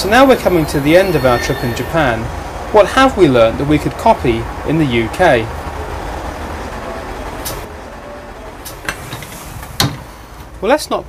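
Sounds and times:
train low rumble and hiss: 0:00.0 - 0:11.0.

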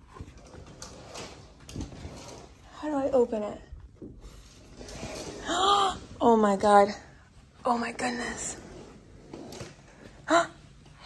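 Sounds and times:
curtain fabric rustling: 0:00.0 - 0:03.6, 0:04.2 - 0:10.2.

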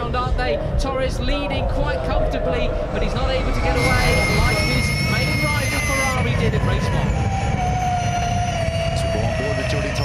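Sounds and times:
low rushing noise: 0:00.0 - 0:10.0
electric motorbike whine: 0:01.6 - 0:10.0.

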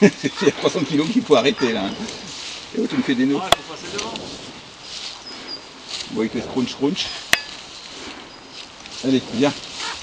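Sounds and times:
donkey chewing grass: 0:07.1 - 0:10.0.

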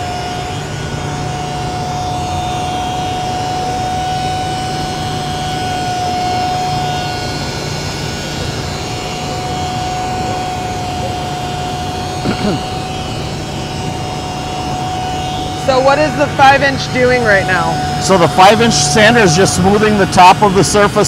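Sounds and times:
orbital sander whining: 0:00.0 - 0:21.0.

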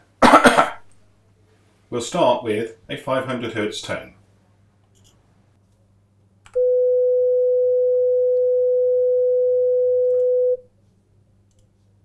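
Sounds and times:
sine test tone: 0:06.5 - 0:10.6.

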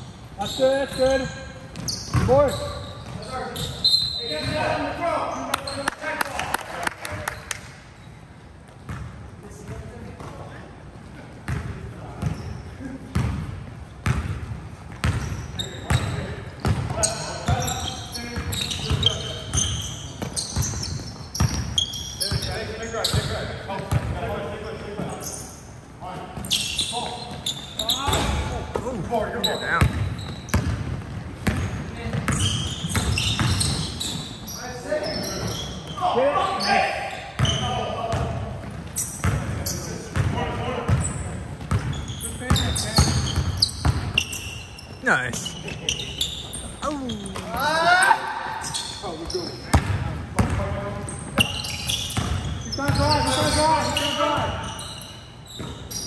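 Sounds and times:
players calling out: 0:44.2 - 0:49.8.

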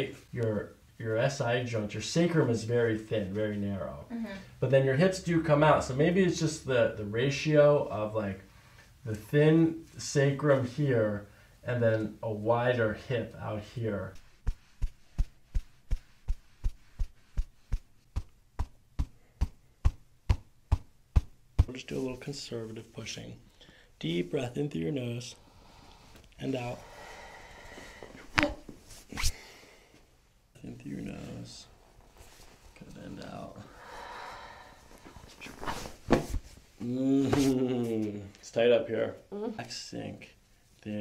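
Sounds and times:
woman exhaling: 0:33.7 - 0:34.9.

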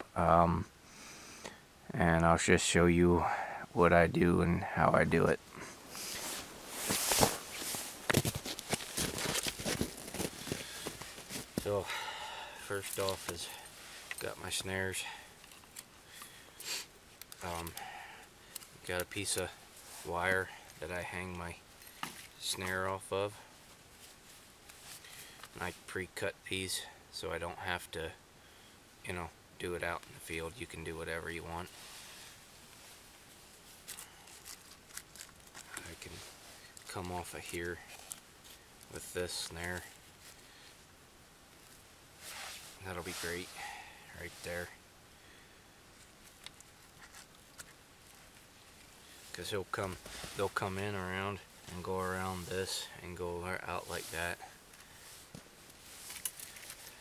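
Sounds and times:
rustling against brush: 0:05.5 - 0:25.8, 0:31.4 - 0:44.8, 0:45.8 - 0:57.0
footsteps crunching through snow: 0:05.9 - 0:12.1, 0:49.2 - 0:50.6.

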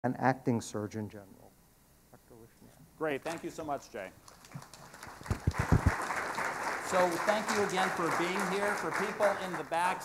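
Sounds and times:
audience applause: 0:04.3 - 0:10.0.

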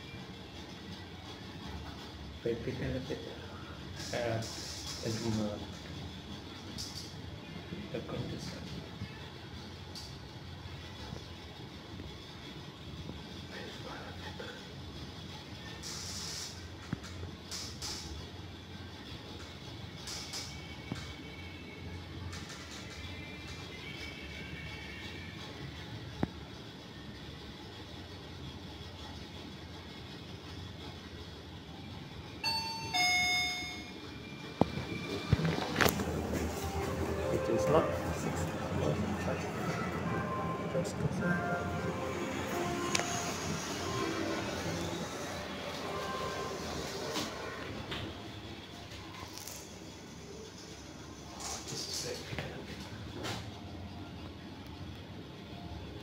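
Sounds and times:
elevator hum and hiss: 0:00.0 - 0:56.0
two-note electronic chime: 0:32.4 - 0:34.0.

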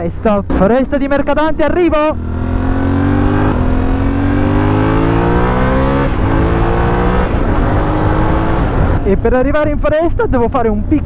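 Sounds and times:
motorcycle engine accelerating: 0:00.5 - 0:09.7.

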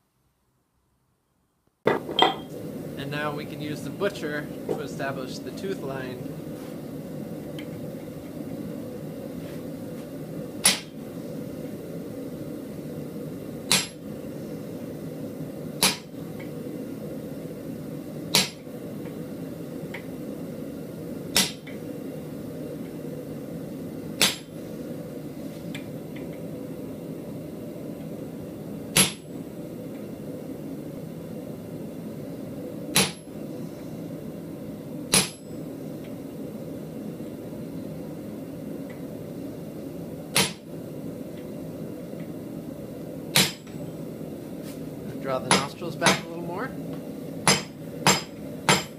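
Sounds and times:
steady low hum: 0:01.9 - 0:48.9
hammer striking chisel on steel: 0:40.4 - 0:40.6, 0:45.5 - 0:46.3, 0:47.5 - 0:48.9.

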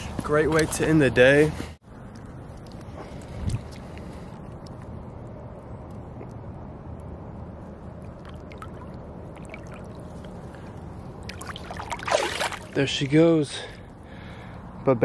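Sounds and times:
small drips and splashes: 0:02.1 - 0:04.9, 0:07.8 - 0:13.2
water lapping and dribbling: 0:02.3 - 0:04.8, 0:07.8 - 0:14.0.

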